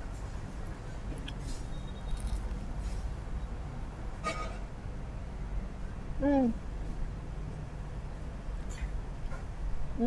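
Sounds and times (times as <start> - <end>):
crunching of crusty bread: 1.1 - 3.1.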